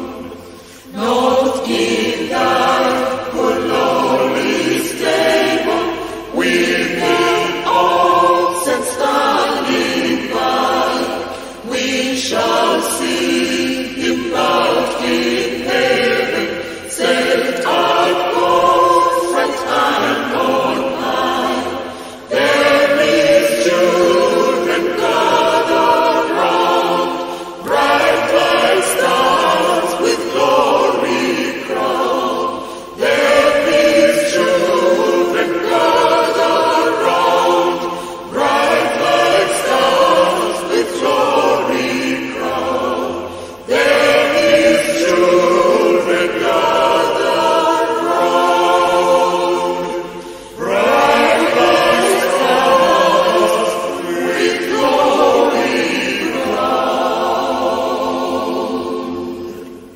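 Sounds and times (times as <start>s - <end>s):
choir singing a hymn: 0.0s - 59.9s.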